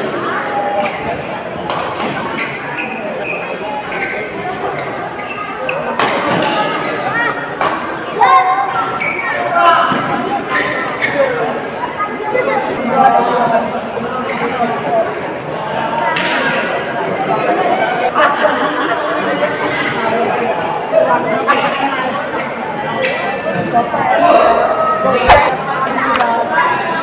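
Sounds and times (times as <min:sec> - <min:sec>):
voices of people: 0:00.0 - 0:27.0.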